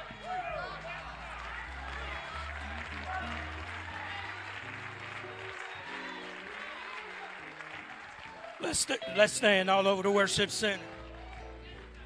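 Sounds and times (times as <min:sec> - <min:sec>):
congregation voices: 0:00.0 - 0:12.0
scattered applause: 0:00.0 - 0:12.0.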